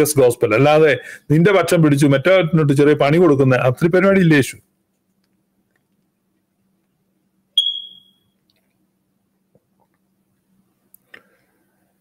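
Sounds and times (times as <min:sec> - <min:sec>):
high-pitched beep: 0:07.6 - 0:08.3.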